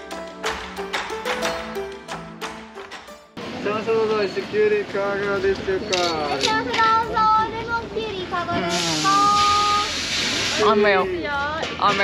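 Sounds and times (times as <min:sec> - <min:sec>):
steady hiss: 0:08.6 - 0:10.9.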